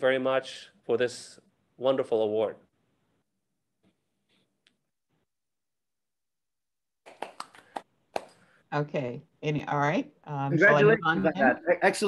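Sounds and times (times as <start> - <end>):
hand claps: 7.0 - 8.5.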